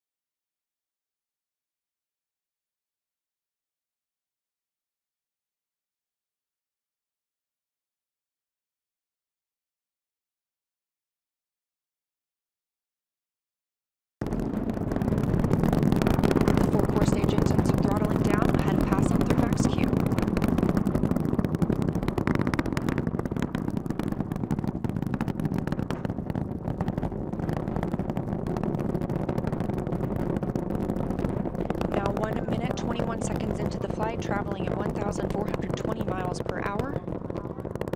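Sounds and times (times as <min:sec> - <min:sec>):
rocket engines roaring: 0:14.2 - 0:37.9.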